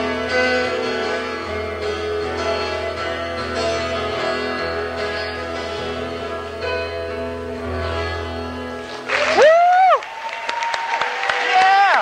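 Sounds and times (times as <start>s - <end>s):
acoustic guitar chords: 0.0s - 9.1s.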